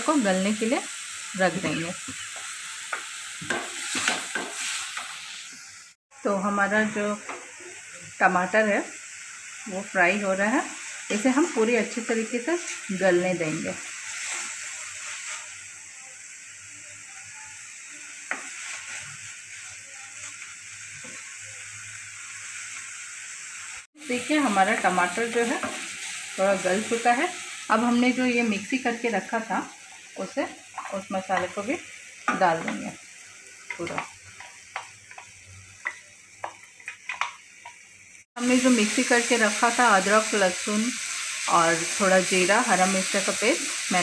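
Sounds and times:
vegetables sizzling in hot oil: 0.0s - 44.0s
spatula tap: 2.4s - 5.1s, 33.7s - 37.8s.

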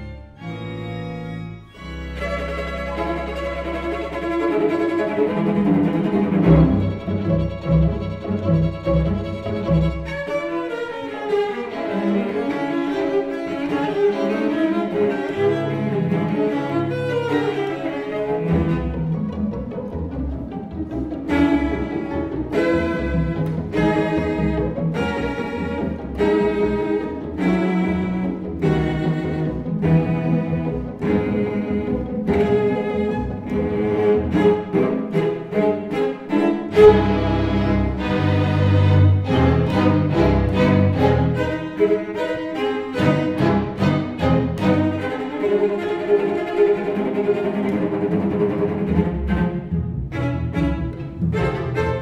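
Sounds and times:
cellos playing long bowed notes: 0.0s - 52.0s
string orchestra playing: 0.0s - 52.0s.

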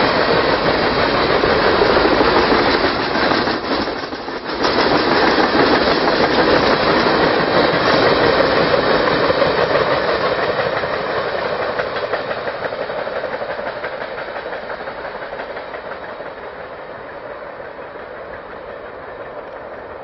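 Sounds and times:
train wheels clattering on rails: 0.0s - 20.0s.

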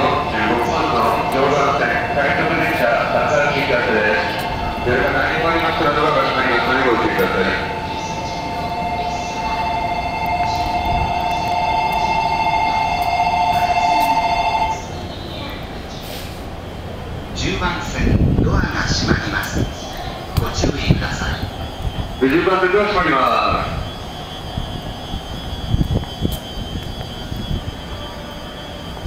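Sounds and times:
person speaking: 0.0s - 7.9s.

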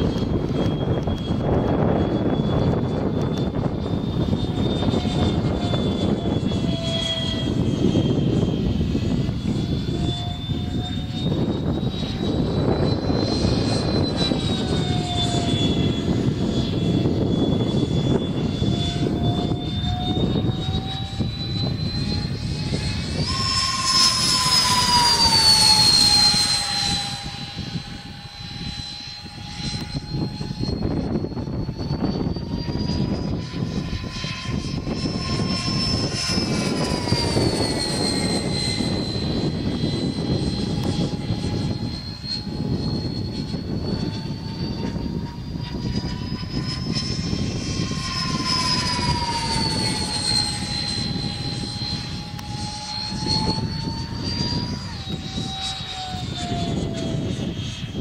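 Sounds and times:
electric ducted fans whining: 0.0s - 58.0s.

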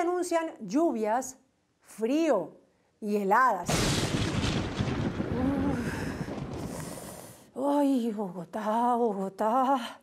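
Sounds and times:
thunder crack and rumble: 3.7s - 7.6s.

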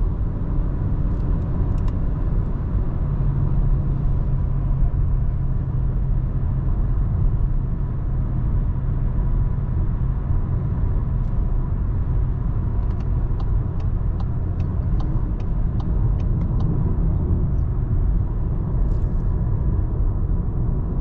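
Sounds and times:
car interior road rumble: 0.0s - 21.0s
faint light ticks: 1.2s - 2.0s, 12.8s - 16.8s.

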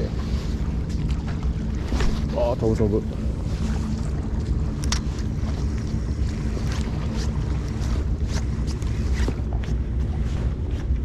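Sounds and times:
sea wash: 0.0s - 11.0s
wind rumbling on microphone: 0.0s - 11.0s.

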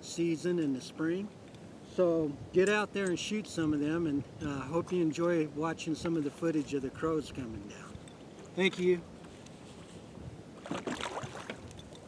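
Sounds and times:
water splashing around wading person: 10.6s - 12.0s.

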